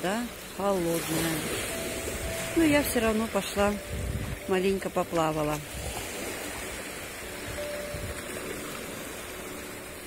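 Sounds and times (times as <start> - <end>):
small waves washing onto shore: 0.0 - 10.0.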